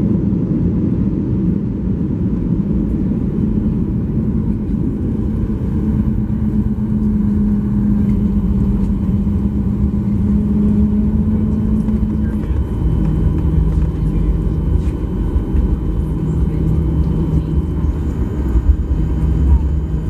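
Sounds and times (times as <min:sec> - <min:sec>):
airplane cabin rumble: 0:00.0 - 0:20.0
droning tone: 0:02.5 - 0:20.0.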